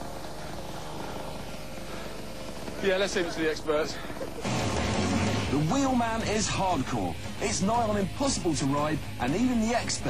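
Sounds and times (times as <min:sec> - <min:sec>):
small petrol scooter engine buzzing: 0:00.0 - 0:10.0.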